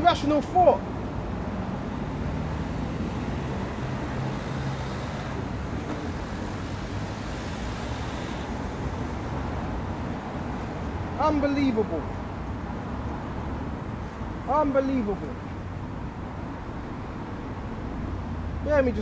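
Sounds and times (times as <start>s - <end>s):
road traffic rumble: 0.0s - 19.0s.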